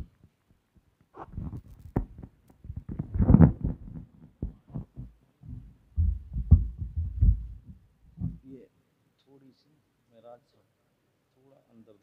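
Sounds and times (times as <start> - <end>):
microphone handling thumps: 1.2 - 8.5.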